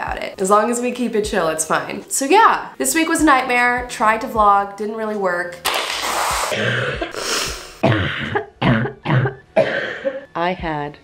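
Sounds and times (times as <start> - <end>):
woman coughing: 7.8 - 10.3.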